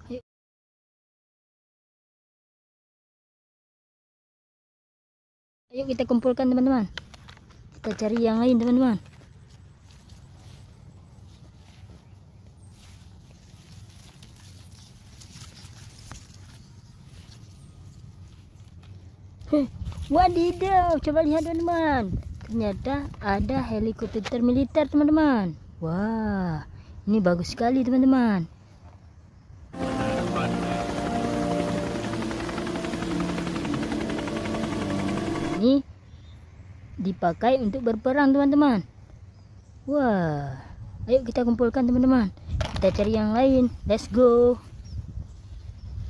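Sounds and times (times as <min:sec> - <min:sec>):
footsteps through grass: 0:09.0 - 0:22.6
helicopter engine whine: 0:29.8 - 0:35.7
helicopter rotor chop: 0:29.8 - 0:35.7.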